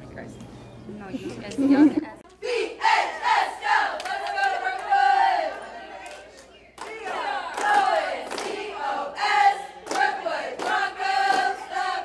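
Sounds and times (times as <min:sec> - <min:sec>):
cheerleaders shouting in unison: 0:02.4 - 0:06.3.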